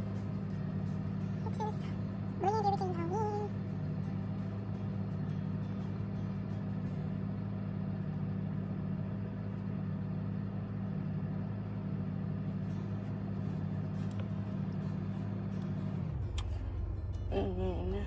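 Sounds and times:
car interior engine hum: 0.0 - 18.0
woman humming: 17.2 - 18.0.

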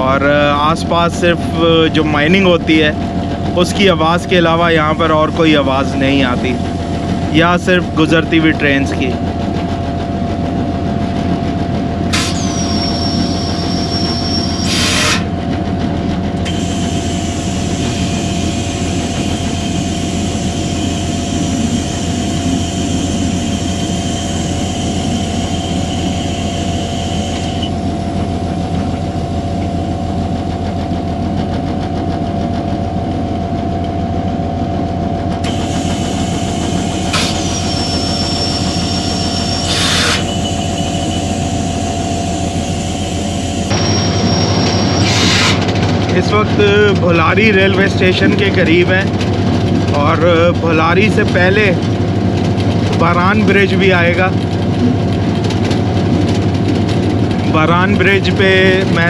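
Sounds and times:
locomotive engine drone: 0.0 - 59.0.

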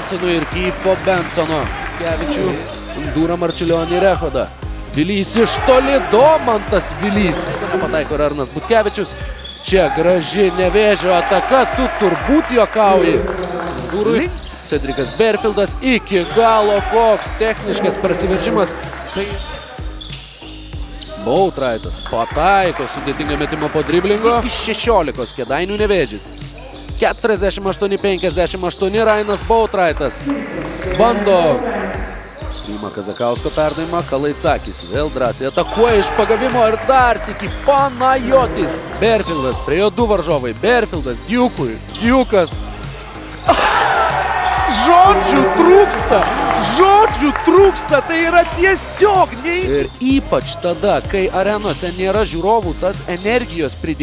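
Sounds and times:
commentator speaking excitedly: 0.0 - 19.6, 21.2 - 26.3, 27.0 - 42.6, 44.6 - 54.0
crowd shouting excitedly: 5.3 - 8.1, 9.8 - 14.3, 16.2 - 19.6, 30.2 - 32.6, 35.6 - 37.3, 43.5 - 49.3
shoe squeak: 18.3 - 22.1, 25.3 - 27.4, 30.5 - 34.0, 49.7 - 50.1.

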